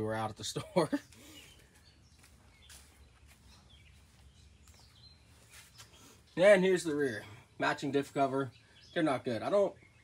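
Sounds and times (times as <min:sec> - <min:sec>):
faint bird chirps: 0:00.9 - 0:10.0.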